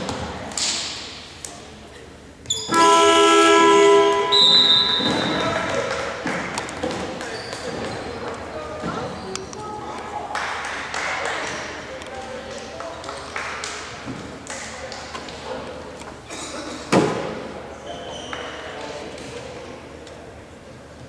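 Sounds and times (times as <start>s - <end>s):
indistinct voices echoing in hall: 0.0s - 21.0s
loud thud ringing in hall: 4.0s - 5.7s.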